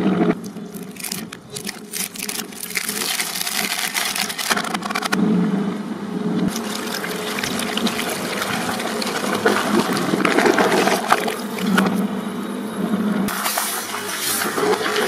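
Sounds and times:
shredder motor hum: 0.2s - 5.5s, 6.3s - 15.0s
shredder blades crunching plastic: 0.4s - 5.2s, 6.5s - 12.0s.

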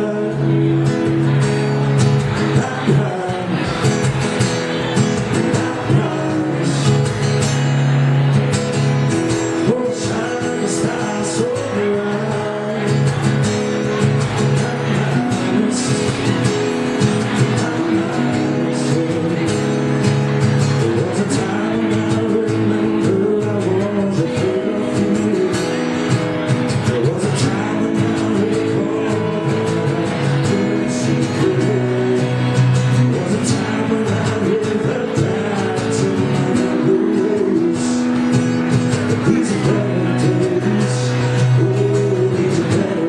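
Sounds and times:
acoustic guitar strumming: 0.0s - 43.0s
man singing: 0.0s - 43.0s.

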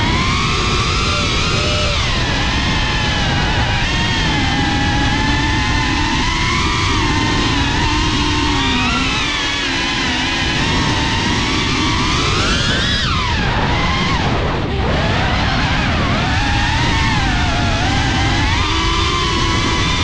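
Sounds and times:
quadcopter motors whining: 0.0s - 20.0s
wind rushing over microphone: 0.0s - 20.0s.

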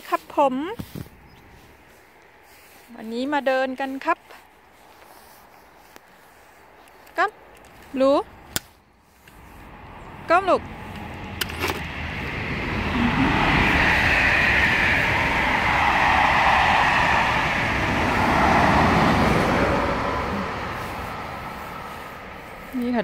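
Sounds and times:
car driving past: 9.3s - 23.0s.

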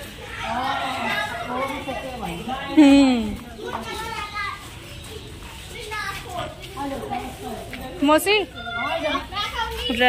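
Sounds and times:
background chatter: 0.0s - 10.0s
child's high-pitched voice: 3.6s - 6.6s, 8.5s - 10.0s.

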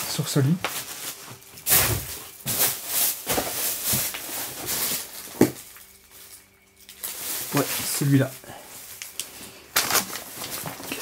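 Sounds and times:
rustling and scraping handling noises: 0.0s - 11.0s.

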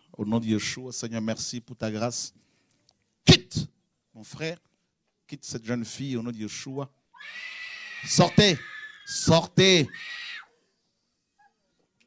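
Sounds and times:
man shouting: 8.0s - 10.0s.

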